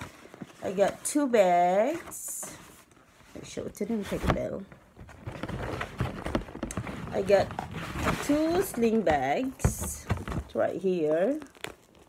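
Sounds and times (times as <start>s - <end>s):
paper and cardboard rustling: 0.0s - 12.0s.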